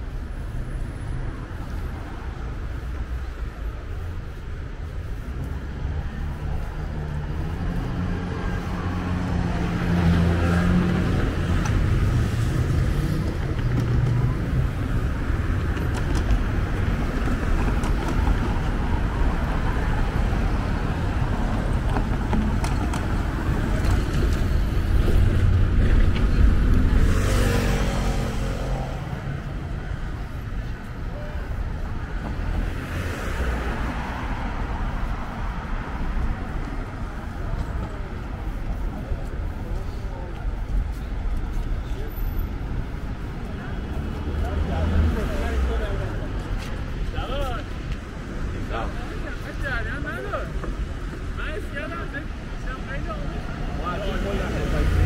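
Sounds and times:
faint voices: 0.0 - 55.0
vehicles passing: 0.0 - 55.0.

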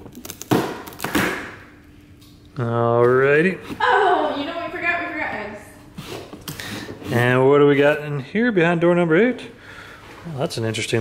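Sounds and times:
cardboard ripping: 0.0 - 1.5.

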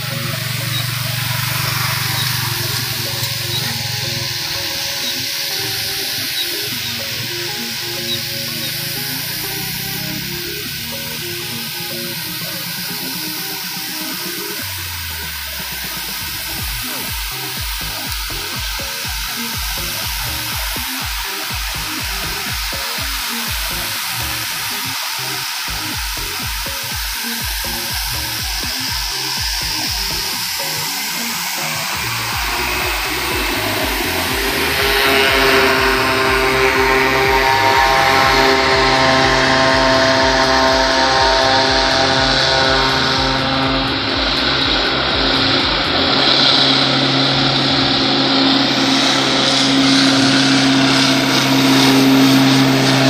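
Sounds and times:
background music: 0.0 - 53.0
low beat: 0.0 - 53.0
rushing hiss: 0.0 - 53.0.

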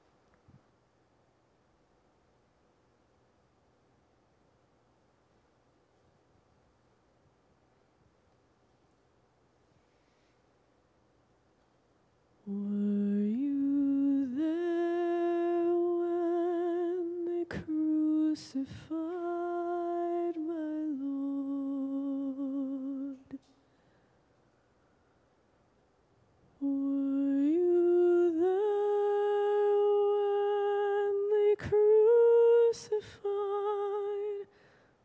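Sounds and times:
person singing unaccompanied: 12.4 - 23.5, 26.6 - 34.5
person humming wordless melody: 12.5 - 23.4, 26.6 - 34.5.

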